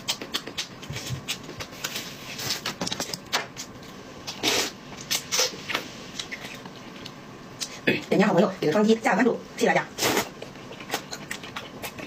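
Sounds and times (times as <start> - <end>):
noodles being slurped: 10.0 - 12.0.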